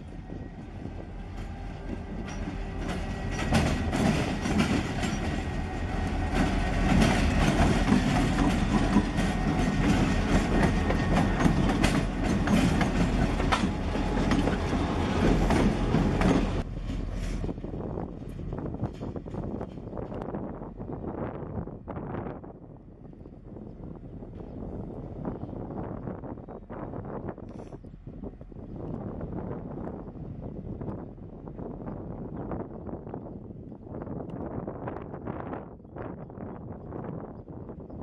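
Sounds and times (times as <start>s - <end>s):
diesel locomotive engines running: 0.0s - 21.8s
train wheels clicking over rails: 1.4s - 17.6s.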